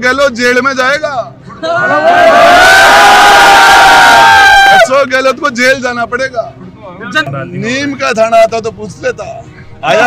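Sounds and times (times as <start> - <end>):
crowd of men cheering and shouting: 1.5 - 5.0.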